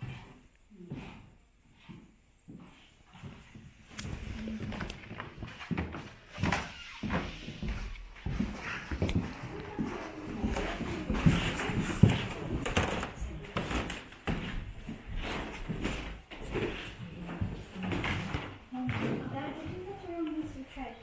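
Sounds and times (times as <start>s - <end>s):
footsteps: 0.9s - 21.0s
people talking indistinctly: 17.3s - 21.0s.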